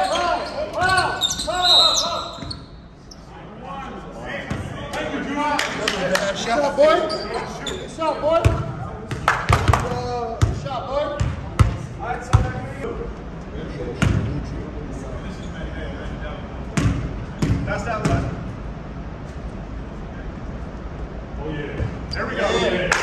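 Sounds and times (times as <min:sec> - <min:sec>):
players' voices: 0:00.0 - 0:18.6, 0:19.9 - 0:23.0
basketball bouncing on gym floor: 0:08.4 - 0:12.6, 0:16.8 - 0:18.3.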